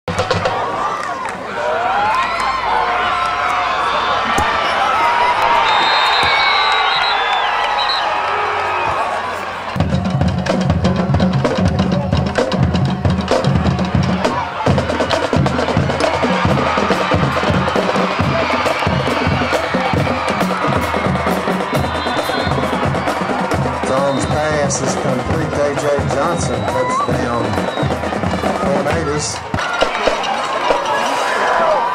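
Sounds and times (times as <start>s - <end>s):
band drums beating: 0.1s - 0.7s, 9.7s - 31.0s
football crowd yelling and cheering: 0.1s - 31.9s.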